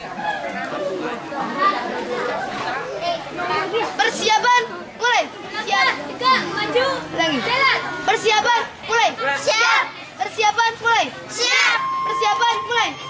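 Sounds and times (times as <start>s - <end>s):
girls chattering and calling out: 0.0s - 13.0s.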